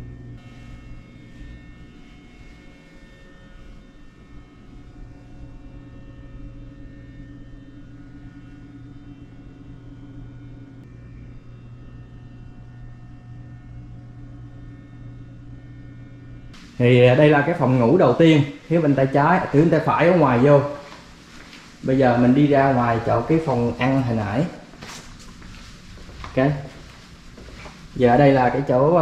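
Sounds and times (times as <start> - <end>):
low room hum: 0.0 - 29.0.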